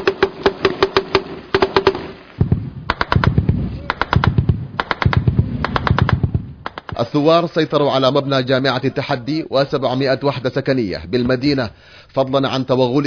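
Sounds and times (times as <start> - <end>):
automatic rifle fire: 0.0 - 7.0
low rumble: 2.4 - 6.7.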